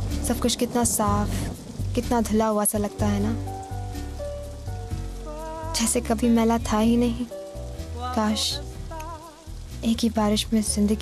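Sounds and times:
soft background music: 0.0s - 11.0s
steady rain hiss: 0.0s - 11.0s
man's voice: 7.9s - 9.5s.

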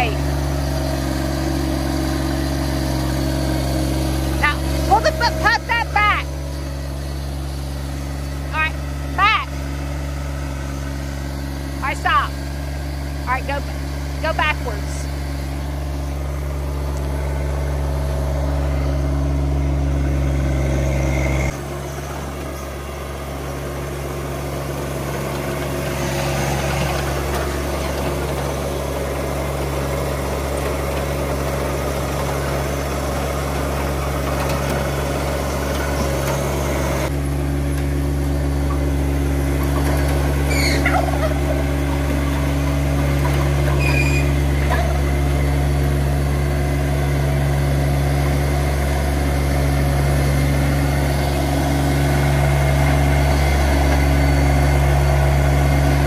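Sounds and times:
tractor diesel engine running: 0.0s - 56.0s.

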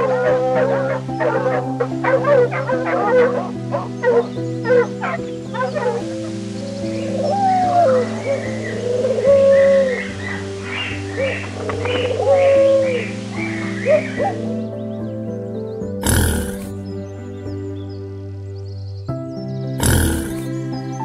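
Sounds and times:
soft piano music: 0.0s - 21.0s
pigeon cooing: 16.0s - 16.8s, 19.8s - 20.5s.

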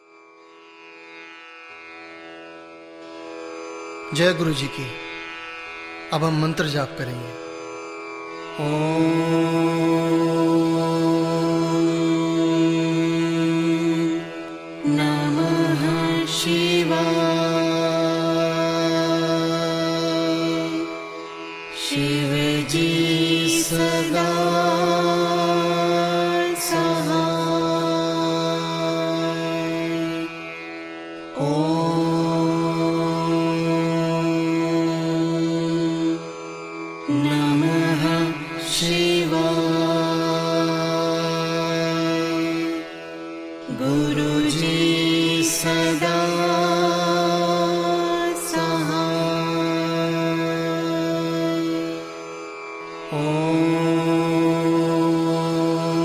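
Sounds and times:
mantra chanting: 4.1s - 5.1s, 6.1s - 7.4s, 8.6s - 30.6s, 31.3s - 36.4s, 37.0s - 52.3s, 52.9s - 56.0s.

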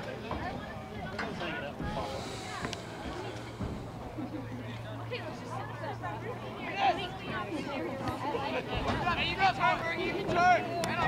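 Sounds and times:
players and spectators chattering: 0.0s - 11.0s.

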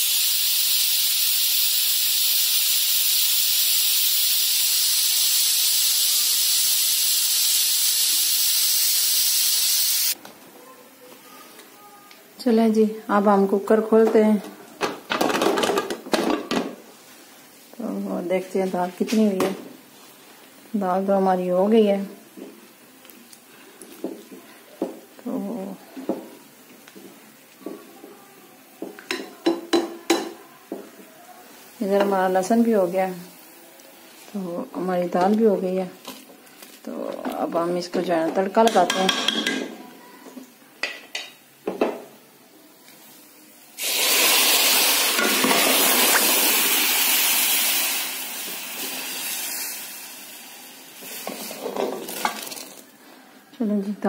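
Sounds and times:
hot oil sizzling: 0.0s - 10.2s, 28.6s - 36.8s, 43.6s - 53.0s.

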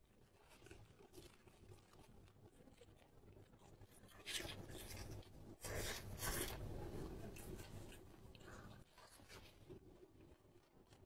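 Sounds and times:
close chewing: 0.0s - 11.0s.

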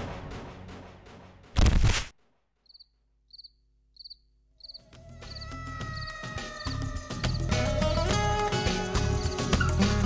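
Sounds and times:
cricket chirping: 2.6s - 7.6s.

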